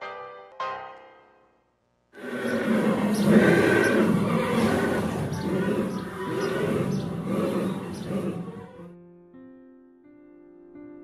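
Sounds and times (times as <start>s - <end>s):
horse neighing: 2.2s - 8.9s.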